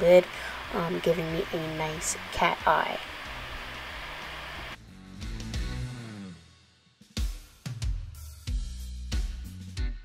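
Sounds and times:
steady background hiss: 0:00.0 - 0:04.8
background music: 0:00.0 - 0:10.0.

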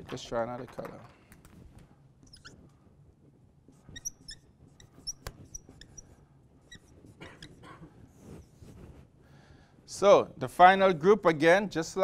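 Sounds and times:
marker squeaking on whiteboard: 0:02.2 - 0:02.8, 0:03.7 - 0:08.8.

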